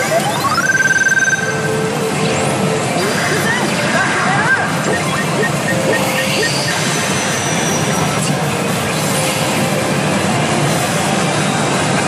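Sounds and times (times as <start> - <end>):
pachinko machine effects: 0.0 - 8.3
pachinko parlour din: 0.0 - 12.0.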